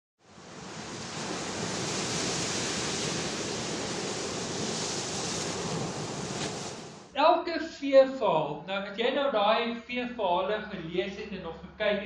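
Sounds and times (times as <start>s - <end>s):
ocean waves rushing: 0.2s - 7.2s.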